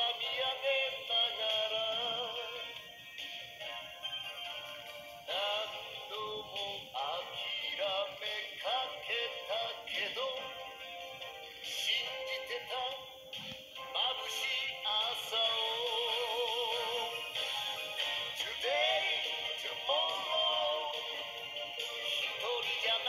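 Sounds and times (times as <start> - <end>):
song with singer and instruments: 0.0 - 23.0.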